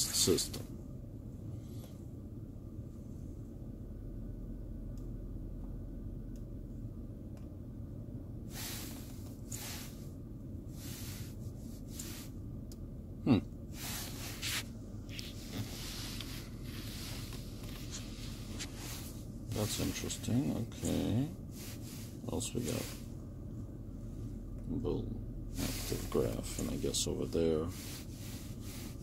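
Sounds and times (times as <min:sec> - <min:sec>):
idling car cabin rumble: 0:00.0 - 0:29.0
soft rustles: 0:08.5 - 0:12.4, 0:13.7 - 0:23.2, 0:25.5 - 0:29.0.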